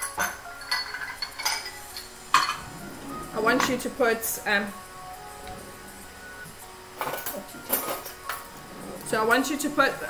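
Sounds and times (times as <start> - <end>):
kitchen utensils clinking: 0.0 - 4.7, 7.0 - 10.0
soft background music: 0.0 - 10.0.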